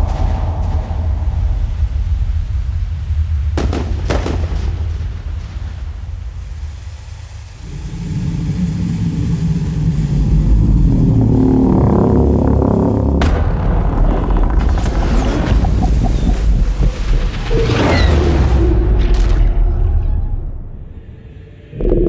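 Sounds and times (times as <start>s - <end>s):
sharp booms: 0.0s - 5.8s, 13.2s - 17.5s
deep heavy rumble: 0.0s - 22.0s
sustained low tones: 7.7s - 13.4s, 20.8s - 22.0s.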